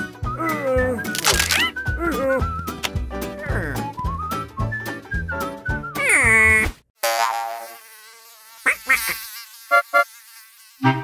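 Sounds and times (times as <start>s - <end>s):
cartoon insect buzzing: 1.1s - 1.8s, 7.0s - 11.0s.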